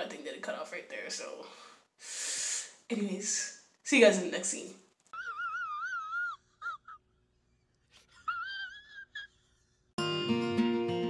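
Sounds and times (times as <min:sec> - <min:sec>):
comic wobbling crying wail: 0:05.2 - 0:07.0, 0:08.2 - 0:09.4.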